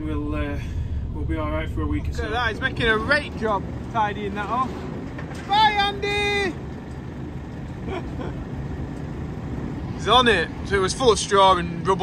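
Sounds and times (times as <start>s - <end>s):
farm machinery engine rumble: 0.0s - 12.0s.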